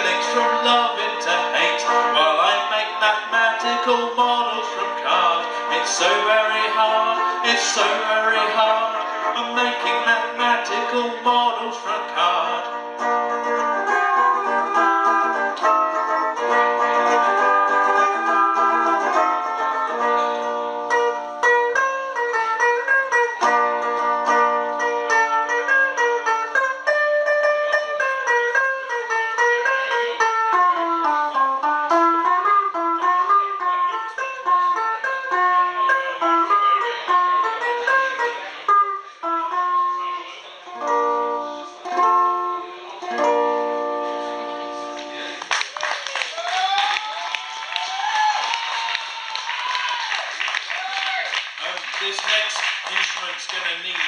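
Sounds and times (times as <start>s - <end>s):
electric plucked-string instrument: 0.0s - 45.8s.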